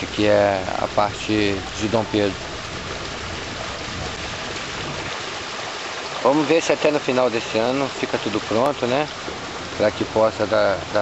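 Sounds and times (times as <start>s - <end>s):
water rushing down: 0.0s - 11.0s.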